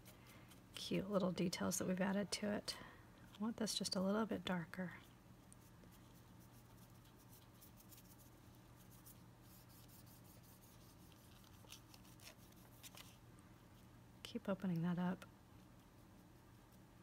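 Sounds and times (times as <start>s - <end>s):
low room hum: 0.0s - 17.0s
paintbrush scratching on clay: 5.5s - 13.2s.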